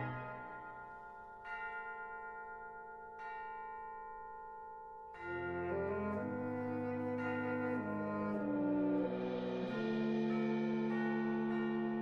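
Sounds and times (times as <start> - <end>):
bell-like metal percussion ringing: 0.0 - 12.0
concert band music: 5.3 - 12.0.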